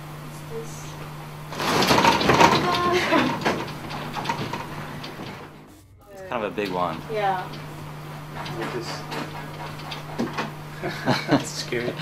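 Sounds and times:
steady low hum: 0.0 - 12.0
room fittings clicking and rattling: 1.5 - 5.6, 6.3 - 12.0.

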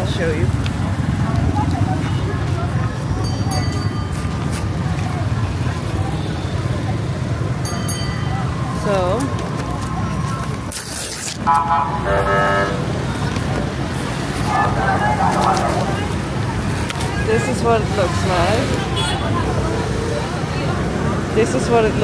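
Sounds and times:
passers-by talking: 0.0 - 22.0
street traffic engine rumble: 0.0 - 22.0
vehicle horn honking: 11.5 - 12.9, 18.8 - 19.4.

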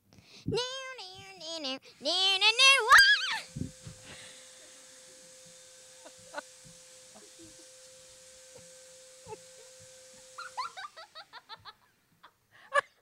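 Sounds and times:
faint hum with hiss: 0.0 - 13.0.

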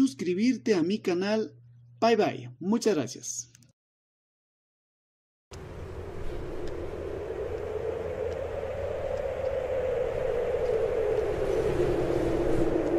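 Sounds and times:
low hum: 1.4 - 2.0, 5.5 - 12.9
rushing drone falling in pitch: 5.5 - 12.9.

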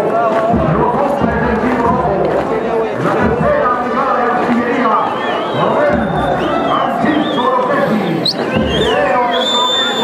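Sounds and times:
crowd shouting and howling: 0.0 - 10.0
high whistle-like cry: 5.0 - 7.6, 8.2 - 10.0.

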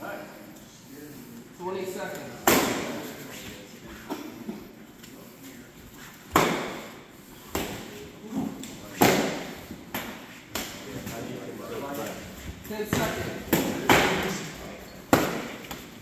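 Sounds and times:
padded sticks striking: 8.9 - 10.8.

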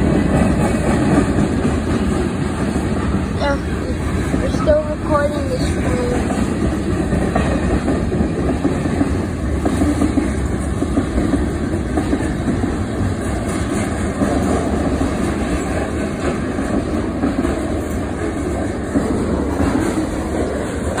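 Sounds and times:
freight train rolling past: 0.0 - 21.0.

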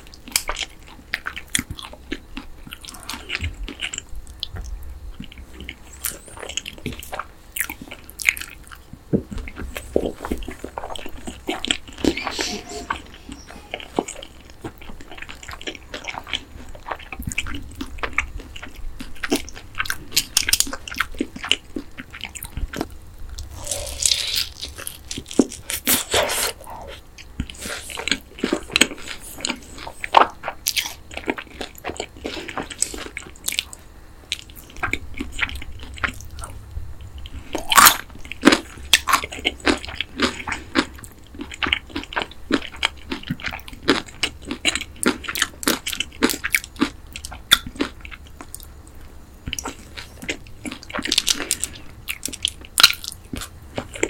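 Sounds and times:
crunchy chewing of fried chicken: 0.0 - 54.0
wet mouth sounds: 23.4 - 30.9.

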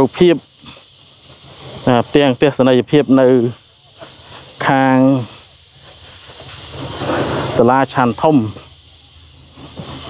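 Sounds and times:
man talking: 0.0 - 0.5, 1.8 - 3.6, 4.6 - 5.4, 7.5 - 8.6
background hiss: 0.0 - 10.0.

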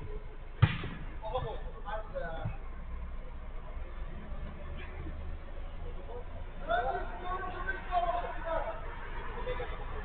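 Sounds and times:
football kick thud: 0.6 - 1.6.

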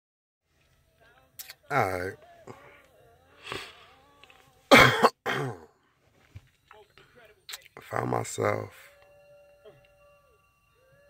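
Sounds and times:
man coughing: 4.7 - 5.8.

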